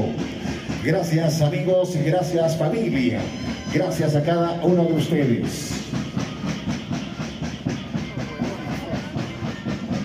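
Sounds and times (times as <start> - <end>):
band sound: 0.0 - 10.0
quick drum beat: 0.0 - 10.0.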